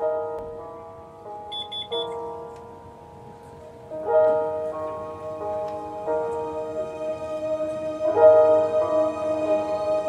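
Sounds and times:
slow gospel piano chords: 0.0s - 10.0s
short high beeps: 1.5s - 2.2s.

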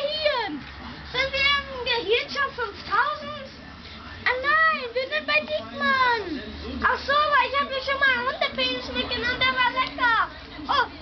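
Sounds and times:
boy talking in high voice: 0.0s - 3.6s, 4.2s - 11.0s.

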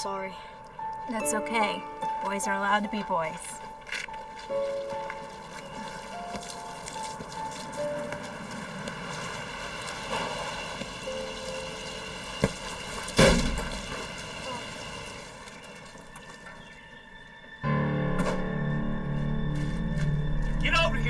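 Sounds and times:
soccer ball kick: 12.4s - 12.6s.

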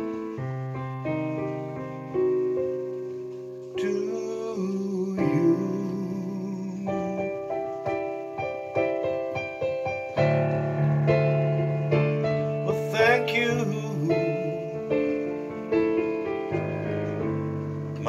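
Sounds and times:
slow piano ballad chords: 0.0s - 18.0s.

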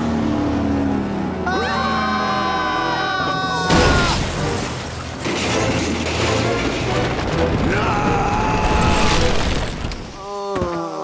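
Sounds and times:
cartoon car crashing and rumbling: 3.6s - 10.2s.

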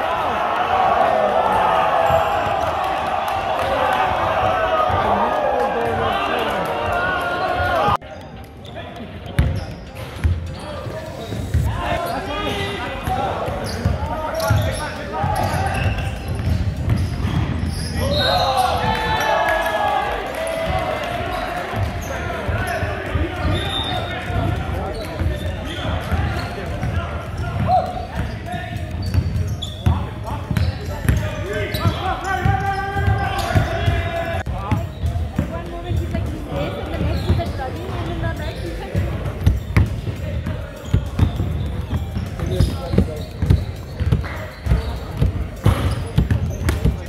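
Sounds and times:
chatter of people in a hall: 0.0s - 47.0s.

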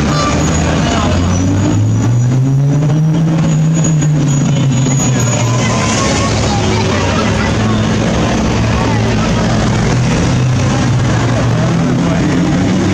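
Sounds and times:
indistinct voices: 0.0s - 12.9s
vehicle engine humming: 0.0s - 12.9s.

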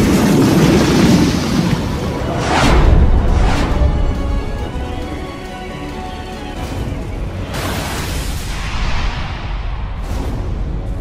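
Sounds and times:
low rumble: 0.0s - 5.3s
dramatic background music: 0.0s - 11.0s.

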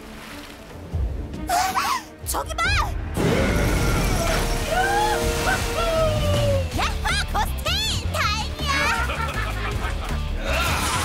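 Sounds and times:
water splashing: 0.0s - 1.3s, 3.4s - 7.6s.

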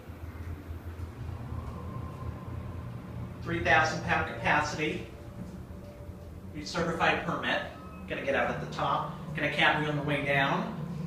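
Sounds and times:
elevator cab hum: 0.0s - 11.0s
faint thin whine: 0.0s - 11.0s.

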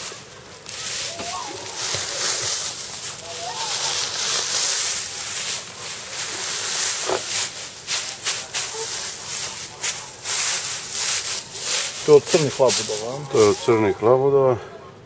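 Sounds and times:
dry straw rustling and crackling: 0.0s - 14.5s.

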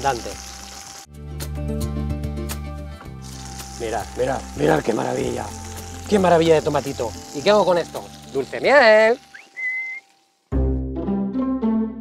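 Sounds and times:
background music with plucked bass: 0.1s - 8.7s, 10.5s - 12.0s
person whistling: 9.3s - 10.1s.

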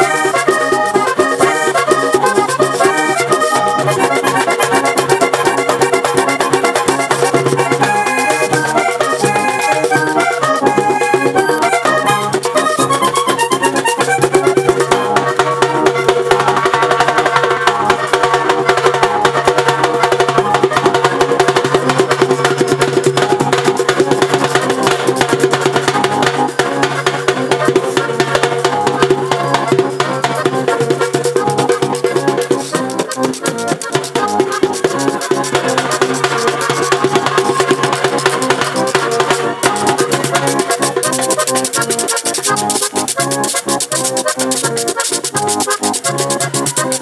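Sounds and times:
button accordion sustained notes: 0.0s - 47.0s
fast hand drum rhythm: 0.0s - 47.0s.

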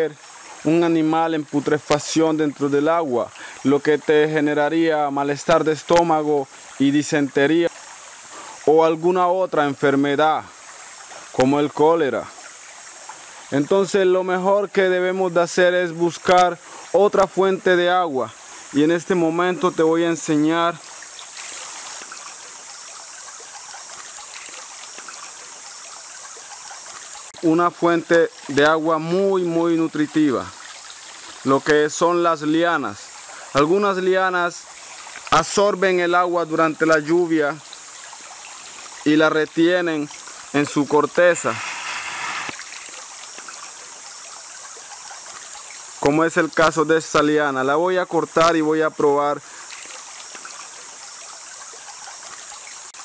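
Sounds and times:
running water hiss: 0.0s - 53.0s
high-pitched insect drone: 40.0s - 46.0s.

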